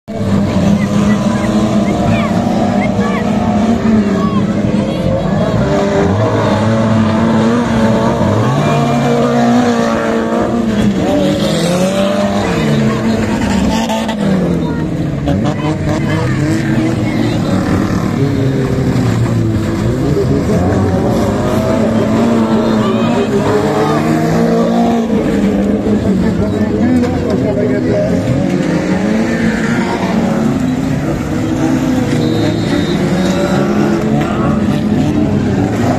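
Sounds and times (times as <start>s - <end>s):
racing car engines revving: 0.0s - 35.9s.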